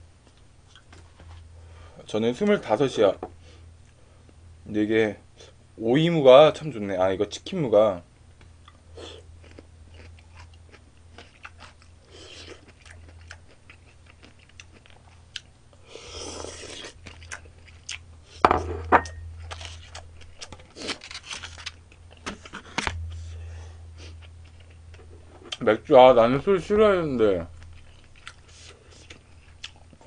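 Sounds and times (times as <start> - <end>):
chewing and crunching food: 0.2 - 1.4, 8.4 - 18.4, 19.1 - 22.6, 24.1 - 25.7, 27.5 - 30.0.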